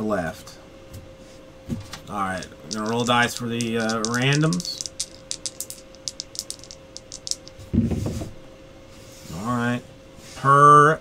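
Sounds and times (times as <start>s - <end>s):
dice rattling in a hand: 2.1s - 7.7s.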